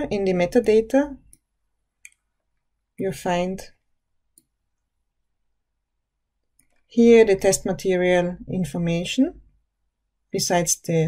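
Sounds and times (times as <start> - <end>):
computer mouse click: 1.2 - 2.7, 4.3 - 4.6, 6.4 - 6.9.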